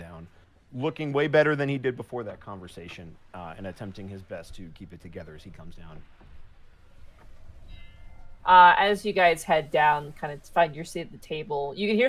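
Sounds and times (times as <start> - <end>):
faint background music: 0.0 - 12.0
faint low hum: 0.0 - 12.0.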